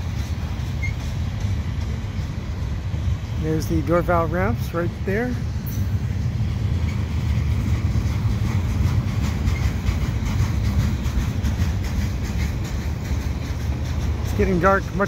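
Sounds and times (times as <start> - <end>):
freight train wheels rumbling: 0.0 - 15.0.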